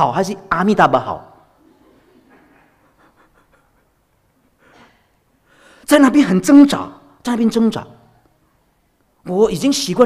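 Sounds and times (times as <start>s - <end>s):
soft breathy laughter: 1.6s - 5.0s
short breath: 4.6s - 5.9s.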